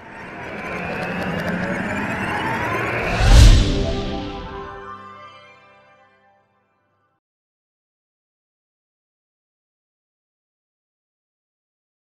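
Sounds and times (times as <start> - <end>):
rush of noise: 0.0 - 5.0
faint falling tone: 0.2 - 5.0.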